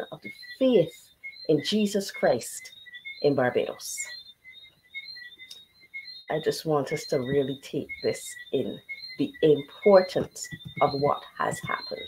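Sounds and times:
faint high chirping: 0.0 - 12.0.

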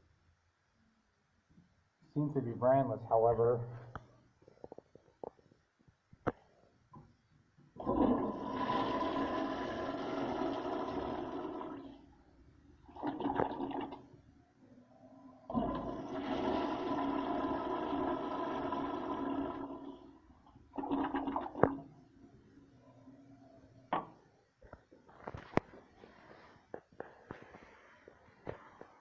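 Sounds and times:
toilet flushing: 7.8 - 12.1, 12.8 - 14.1, 15.4 - 21.9.

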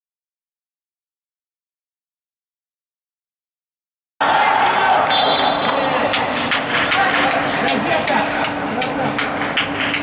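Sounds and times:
shouting voices echoing: 4.2 - 9.2
steady low hum: 4.5 - 10.0.

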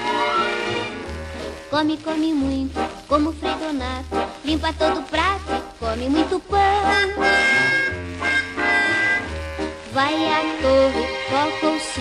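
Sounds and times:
orchestra playing: 0.0 - 1.8, 6.8 - 12.0.

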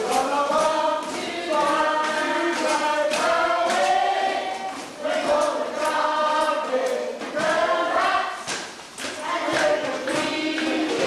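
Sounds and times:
chorus singing: 0.0 - 11.0.

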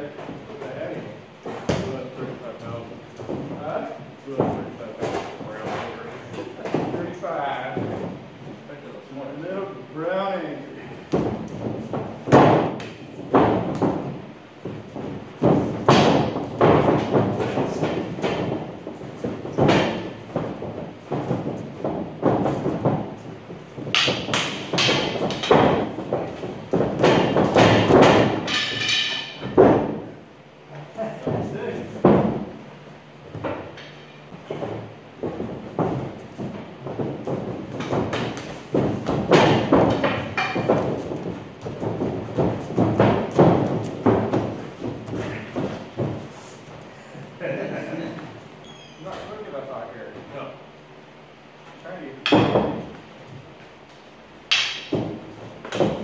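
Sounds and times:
footwork stamping on ring floor: 0.0 - 9.0, 10.4 - 49.5, 51.2 - 56.0
sticks striking padding: 11.0 - 30.2, 33.4 - 46.7, 52.2 - 53.1, 54.4 - 56.0
sharp stick cracks: 54.5 - 54.9.

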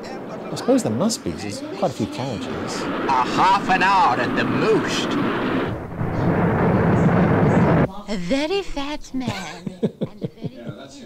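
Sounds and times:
train running on rails: 0.0 - 7.9.

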